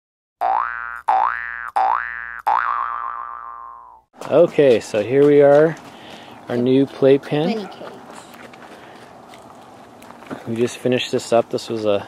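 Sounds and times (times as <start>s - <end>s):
springy boing sound effect: 0.4s - 4.0s.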